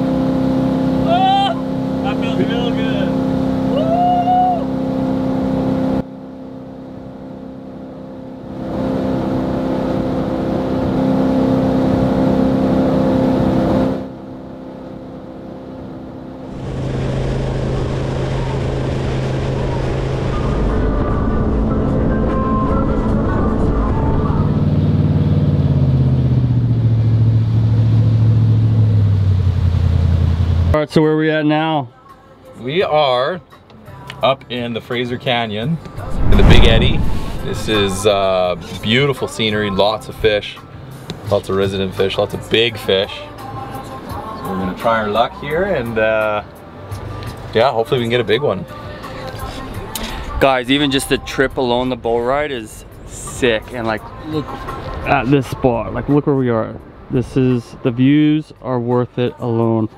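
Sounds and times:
boat engine running: 0:00.0 - 0:30.8, 0:35.8 - 0:47.6
person calling out: 0:01.0 - 0:01.6.

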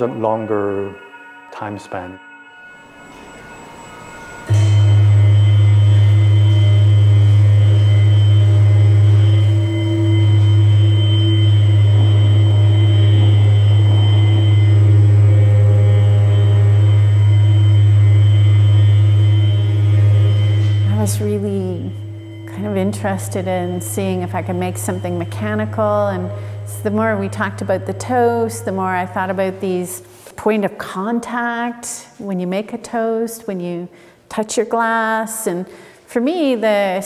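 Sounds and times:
drone of layered steady tones: 0:00.0 - 0:30.3
strong low hum: 0:02.6 - 0:30.1.

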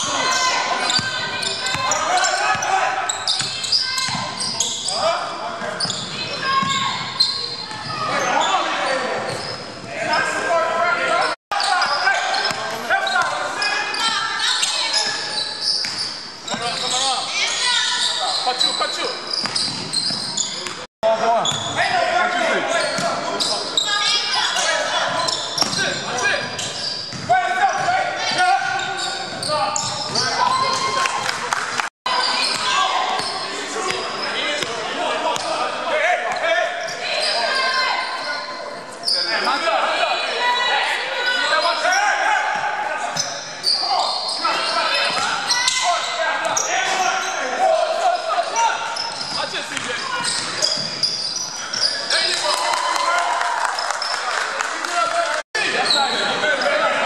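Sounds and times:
players shouting: 0:00.0 - 0:15.4, 0:21.8 - 0:31.4.

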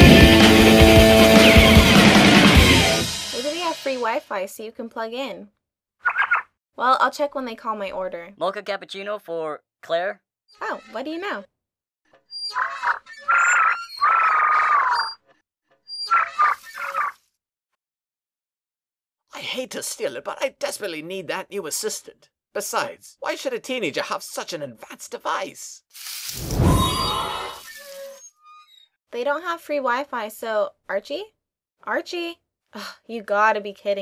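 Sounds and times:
magic whoosh: 0:26.4 - 0:27.7.

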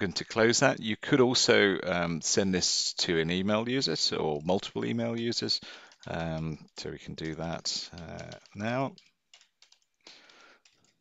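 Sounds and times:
computer keyboard typing: 0:03.1 - 0:11.0.

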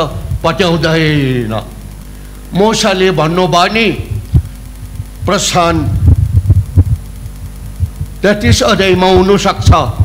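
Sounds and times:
man speaking: 0:05.2 - 0:06.0, 0:08.2 - 0:10.0
microphone handling thumps: 0:05.9 - 0:08.2.

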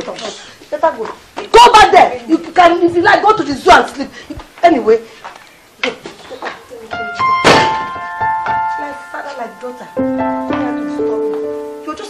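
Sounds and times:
held keyboard notes: 0:06.8 - 0:12.0
door slamming: 0:07.2 - 0:08.7.

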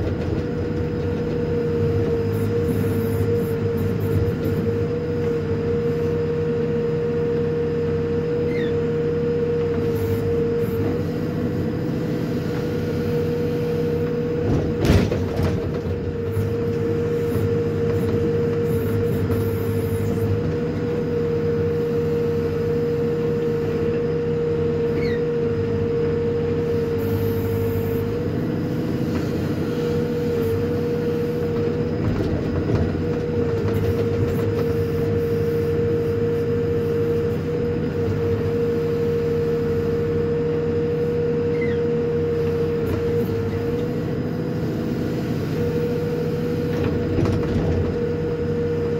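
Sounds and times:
backhoe engine droning: 0:00.0 - 0:48.9
hydraulic whine: 0:07.1 - 0:48.9.

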